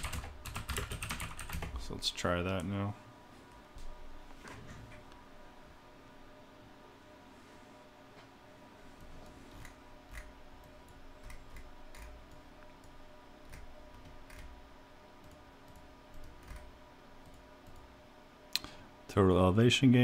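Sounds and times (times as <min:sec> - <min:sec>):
low steady hum: 0:00.0 - 0:20.0
computer mouse clicks: 0:09.5 - 0:14.5, 0:15.2 - 0:17.9.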